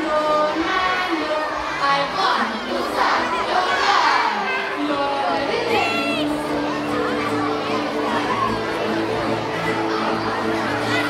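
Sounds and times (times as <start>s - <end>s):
children shouting: 0.0s - 11.0s.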